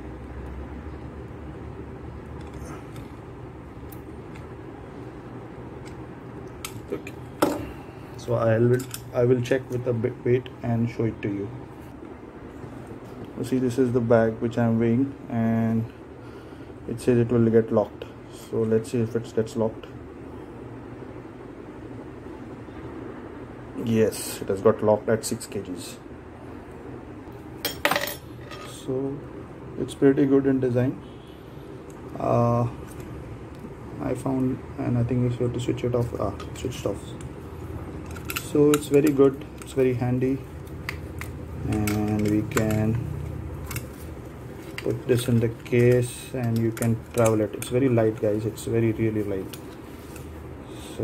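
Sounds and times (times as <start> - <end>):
steady low background noise: 0.0 - 51.0.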